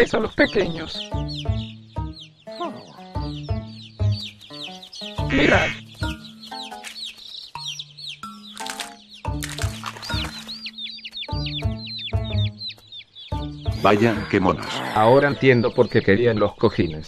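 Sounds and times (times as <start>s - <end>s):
cartoon ducklings peeping: 0.0s - 17.0s
music with low held notes: 0.0s - 17.0s.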